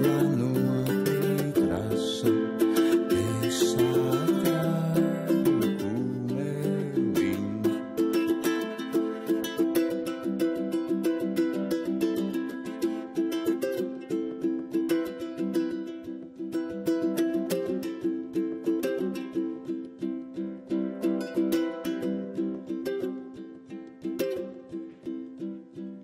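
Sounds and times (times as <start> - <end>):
solo ukulele playing: 0.0 - 26.0.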